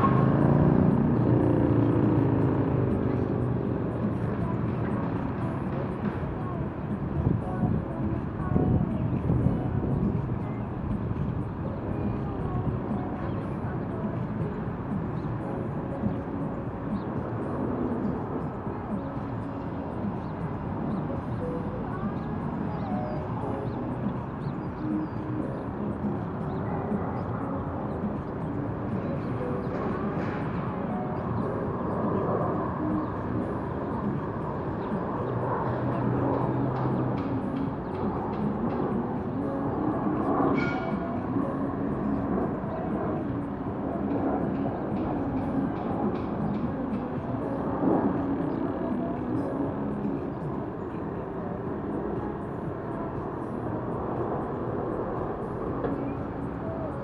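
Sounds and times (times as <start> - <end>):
city traffic noise: 0.0 - 57.0
faint distant voices: 0.0 - 57.0.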